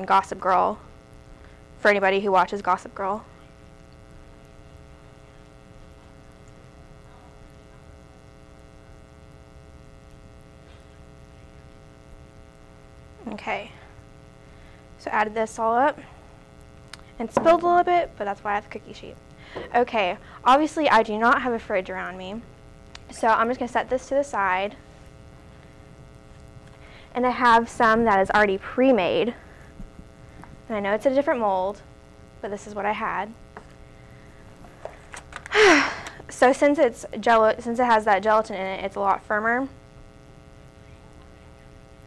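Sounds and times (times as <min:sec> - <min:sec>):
electrical mains hum: 0:00.0 - 0:42.0.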